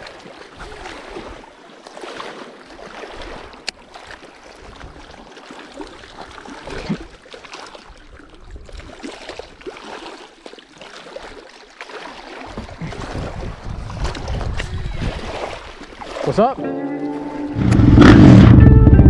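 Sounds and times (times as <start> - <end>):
wind rumble on microphone: 12.6 - 15.6, 17.5 - 19.0.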